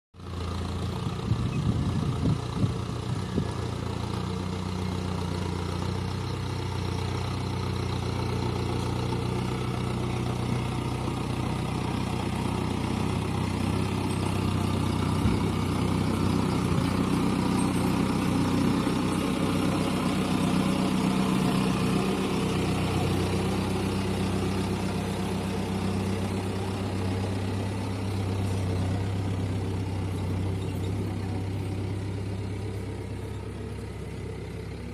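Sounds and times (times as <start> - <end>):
tractor diesel engine running: 0.2 - 34.9
dozer blade pushing soil: 7.3 - 34.9.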